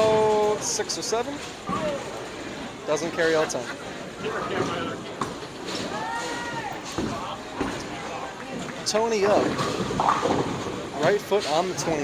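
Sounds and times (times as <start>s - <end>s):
bowling balls rolling on lanes: 6.8s - 12.0s.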